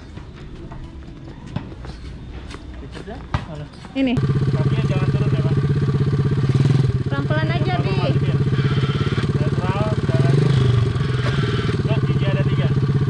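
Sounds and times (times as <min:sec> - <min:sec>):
quad bike engine running: 0:03.9 - 0:13.0.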